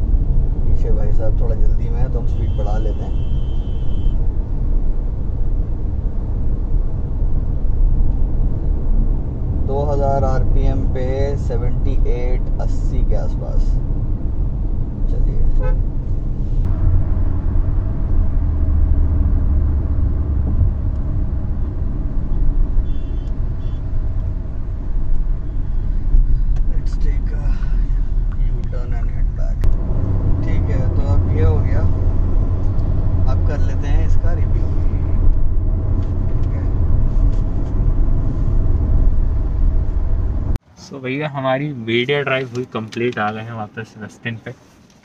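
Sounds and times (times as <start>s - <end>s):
car engine and road noise: 0.0s - 45.0s.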